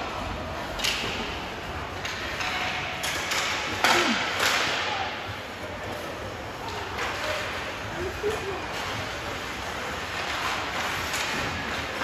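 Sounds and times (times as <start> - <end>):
hockey sticks and puck clacking: 0.0 - 12.0
rink background noise: 0.0 - 12.0.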